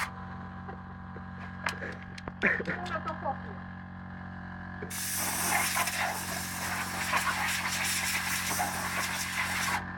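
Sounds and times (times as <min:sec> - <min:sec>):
compressed air hissing: 0:04.9 - 0:09.8.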